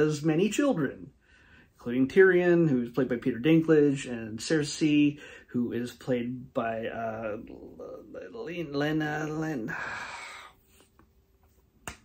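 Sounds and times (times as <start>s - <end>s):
finger snap: 11.8s - 12.0s.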